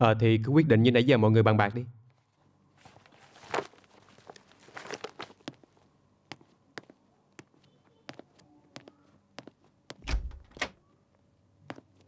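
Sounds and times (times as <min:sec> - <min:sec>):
footsteps on a hard floor: 0:06.3 - 0:10.0
door latch click: 0:10.0 - 0:10.8
wooden door opening thump: 0:10.0 - 0:10.8.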